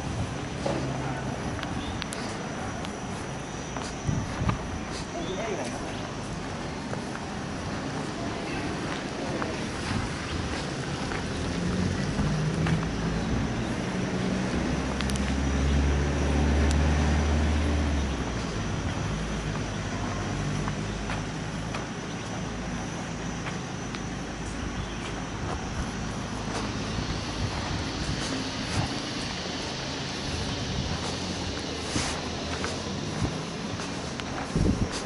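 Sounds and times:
vehicle engine running: 0:00.0 - 0:35.0.

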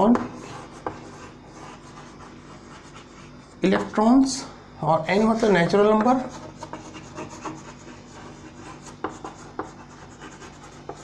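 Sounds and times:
chalk scratching on blackboard: 0:00.1 - 0:03.9, 0:06.2 - 0:11.0
chalk tapping on blackboard: 0:00.1 - 0:03.9, 0:06.0 - 0:11.0.

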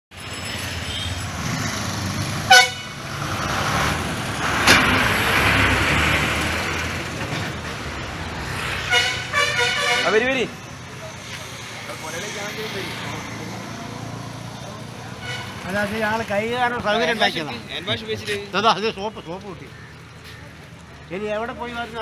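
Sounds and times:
bus engine passing: 0:00.1 - 0:22.0
road traffic: 0:00.1 - 0:22.0
horn blasts and toots: 0:02.4 - 0:03.1, 0:08.8 - 0:10.4, 0:15.2 - 0:15.6.

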